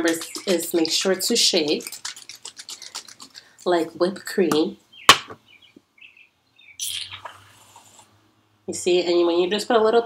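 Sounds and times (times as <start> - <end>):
faint high chirps: 6.1 - 7.5.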